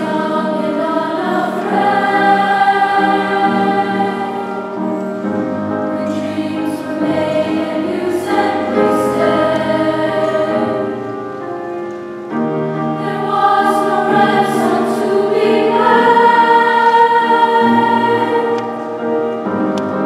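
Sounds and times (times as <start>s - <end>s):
women's choir singing: 0.0s - 11.3s, 12.3s - 20.0s.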